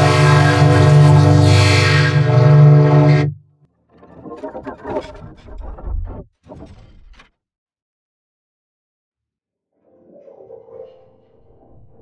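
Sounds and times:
distorted horn-like chord: 0.0 - 3.4.

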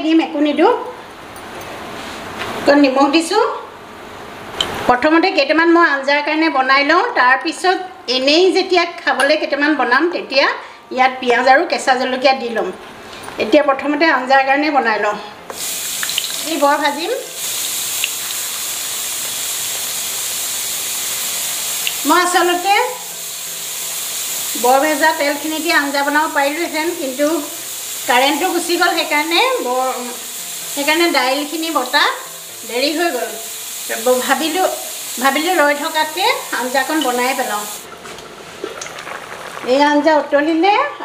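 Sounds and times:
fritters sizzling in hot oil: 15.5 - 37.9.

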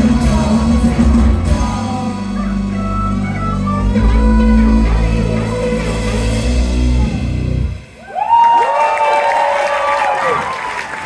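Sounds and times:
higher melodic line: 0.0 - 8.0
keyboards: 0.0 - 8.0
bass line: 0.0 - 8.3
drums: 0.0 - 11.0.

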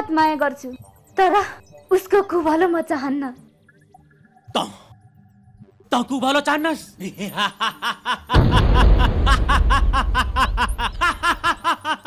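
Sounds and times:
man laughing loudly: 7.2 - 12.0
deep rumble: 8.4 - 11.5.

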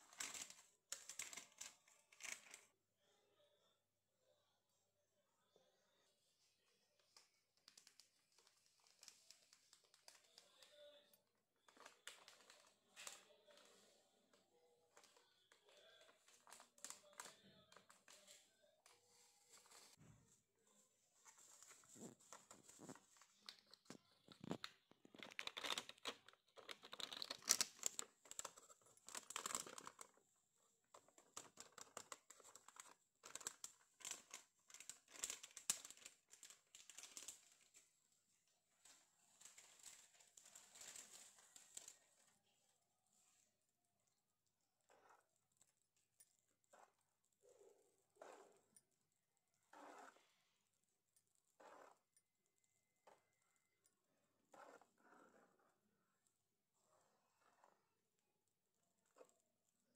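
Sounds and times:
crinkling and scraping in kitchen: 0.0 - 2.8, 5.5 - 58.0
soft mixing sounds: 0.0 - 59.9
powder mixed in metal bowl: 44.8 - 58.1.

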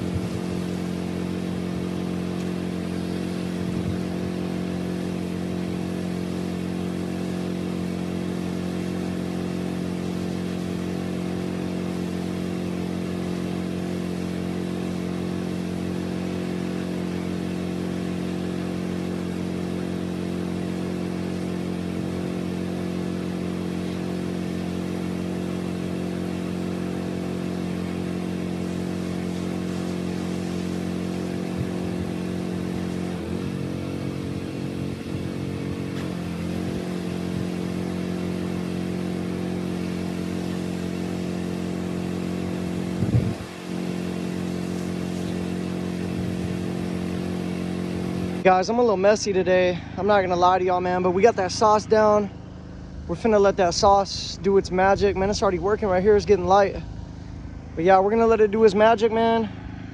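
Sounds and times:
small gasoline engine running: 0.0 - 59.9.

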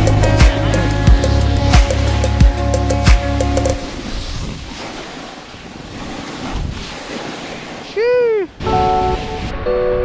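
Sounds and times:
music: 0.0 - 3.8, 8.6 - 10.0
wind on microphone: 3.7 - 7.8
snowboard scraping over snow: 3.8 - 8.0.

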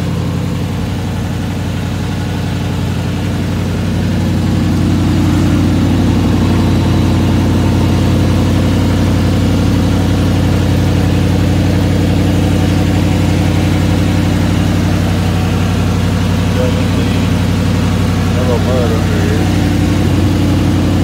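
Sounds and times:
pickup truck engine idling: 0.0 - 21.0.

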